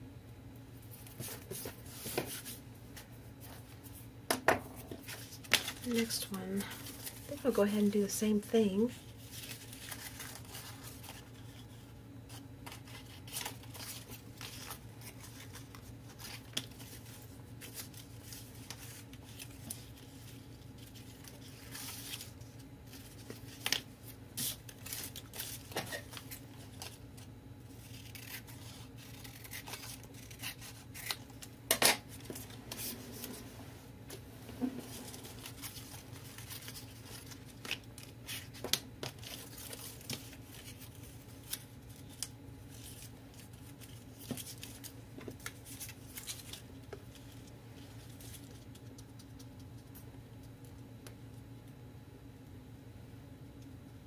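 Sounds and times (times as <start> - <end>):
steady low hum: 0.0 - 54.0
paper rustling: 9.0 - 31.5, 34.6 - 49.5.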